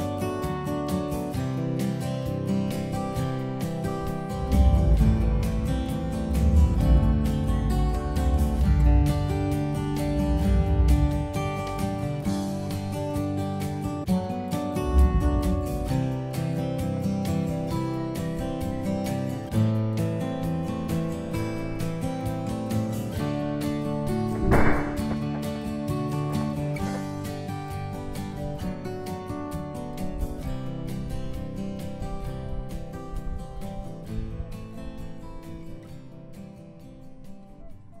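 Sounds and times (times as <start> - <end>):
acoustic guitar music: 0.0 - 38.0
loud burst of noise: 24.3 - 25.6.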